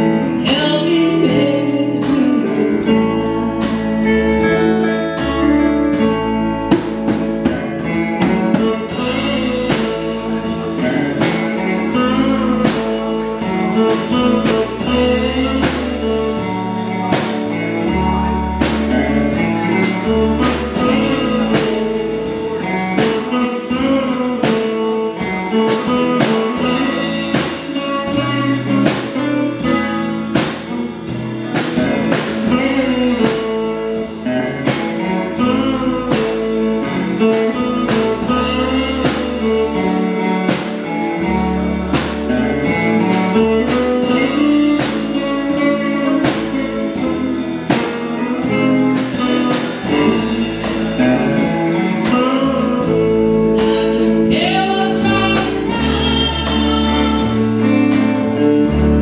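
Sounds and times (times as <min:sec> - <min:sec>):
blues band playing: 0:00.0 - 0:59.0
woman singing: 0:00.2 - 0:04.0, 0:53.5 - 0:58.1.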